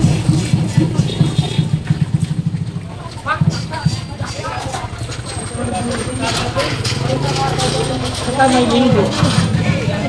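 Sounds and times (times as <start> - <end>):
people talking: 0.0 - 2.2, 2.8 - 10.0
low rumble of traffic: 0.0 - 10.0
motorcycle engine: 0.0 - 10.0.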